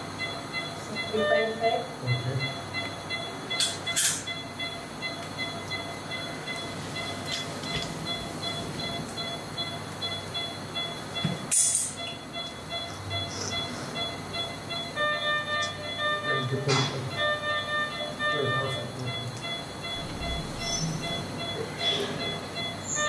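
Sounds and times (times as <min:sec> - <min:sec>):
equipment hum: 0:00.0 - 0:23.0.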